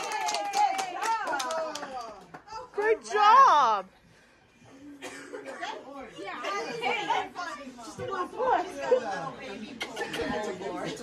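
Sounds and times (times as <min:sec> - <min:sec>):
group chatter: 0:04.6 - 0:11.0.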